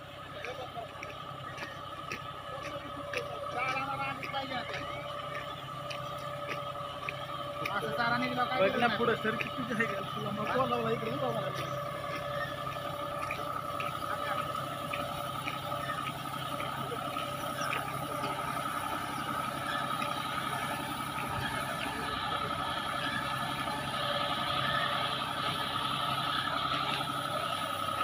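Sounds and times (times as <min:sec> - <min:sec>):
tractor engine running: 0:00.0 - 0:28.0.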